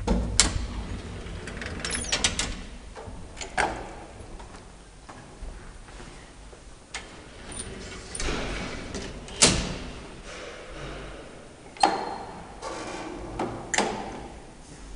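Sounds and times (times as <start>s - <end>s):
elevator door sliding: 0.0s - 4.5s, 6.9s - 14.6s
elevator gate banging: 7.0s - 14.4s.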